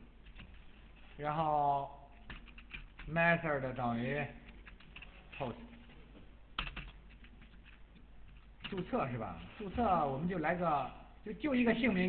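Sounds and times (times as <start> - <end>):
typing on computer keyboard: 0.2 - 0.8, 2.1 - 3.2, 4.4 - 5.3, 6.5 - 8.9.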